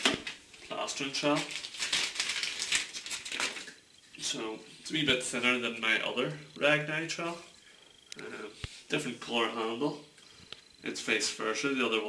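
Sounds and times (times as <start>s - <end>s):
plastic packaging crackling: 0.0s - 3.8s.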